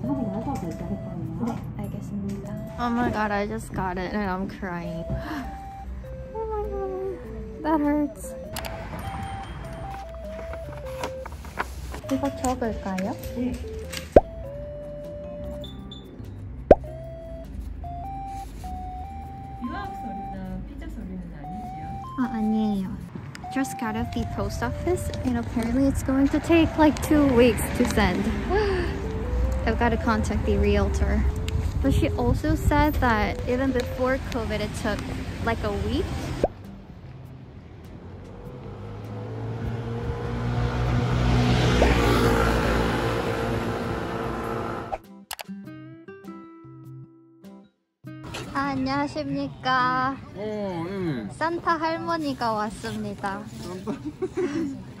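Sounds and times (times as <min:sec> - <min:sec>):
car passing: 0:00.0 - 0:45.0
light background music: 0:00.0 - 0:55.0
sharp rising blip: 0:16.7 - 0:17.0.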